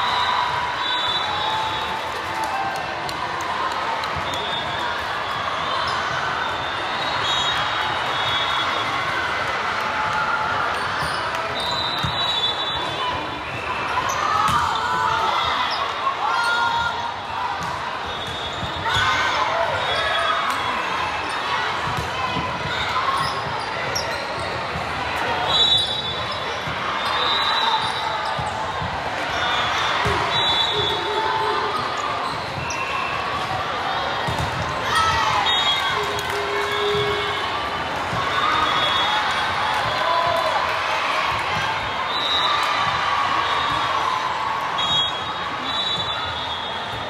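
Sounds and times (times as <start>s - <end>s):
hubbub of voices: 0.0s - 47.0s.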